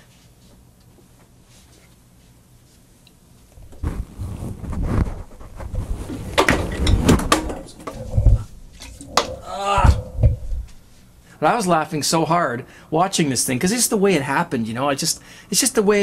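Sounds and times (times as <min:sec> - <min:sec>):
man exclaiming: 0:09.4 - 0:10.1.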